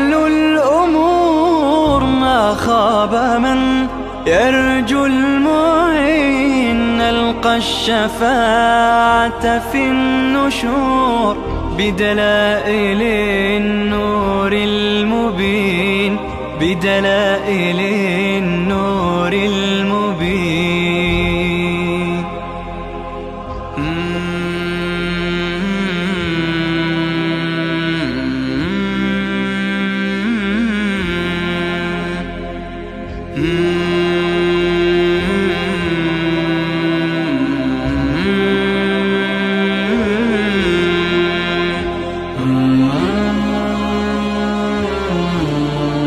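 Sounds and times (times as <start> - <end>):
layered voices humming: 21.5 - 46.0.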